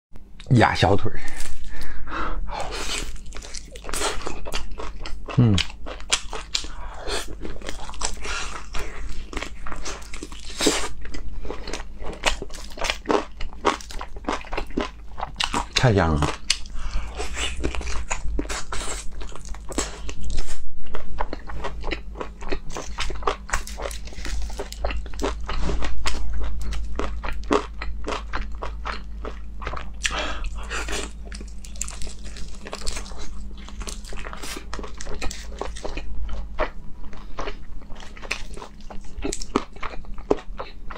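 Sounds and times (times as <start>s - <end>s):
biting and chewing meat: 2.6s - 40.9s
person humming mm: 5.4s - 5.7s.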